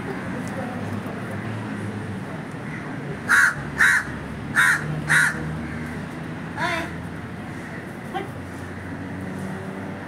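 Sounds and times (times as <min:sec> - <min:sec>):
crow cawing: 0:02.7 - 0:06.0.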